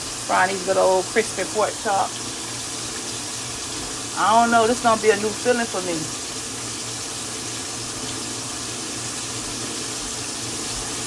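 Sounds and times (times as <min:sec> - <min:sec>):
pork chops sizzling in oil: 0:00.0 - 0:11.0.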